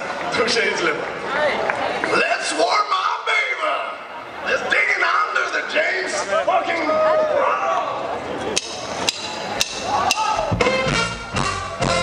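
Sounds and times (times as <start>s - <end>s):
big band playing: 8.4s - 12.0s.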